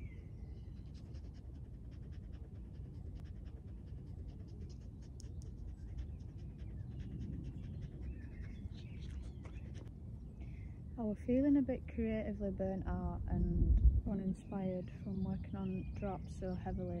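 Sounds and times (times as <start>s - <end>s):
wind rumble on microphone: 0.0s - 17.0s
dog panting: 0.5s - 9.9s.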